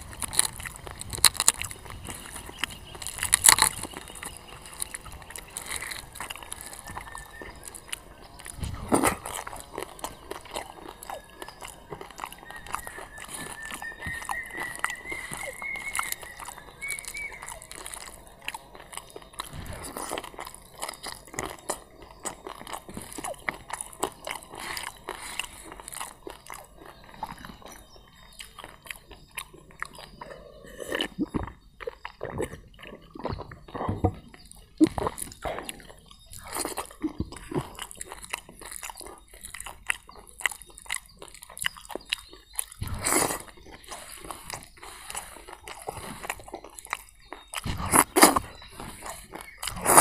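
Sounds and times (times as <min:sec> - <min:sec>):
man chewing food: 0:00.0 - 0:50.0.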